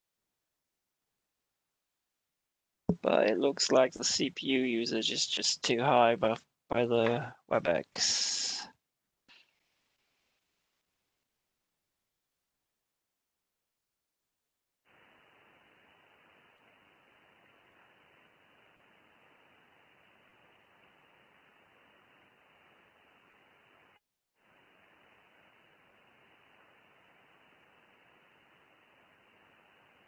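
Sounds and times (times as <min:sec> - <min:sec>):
shortwave radio hiss: 0:02.9 - 0:08.7, 0:14.9 - 0:30.0.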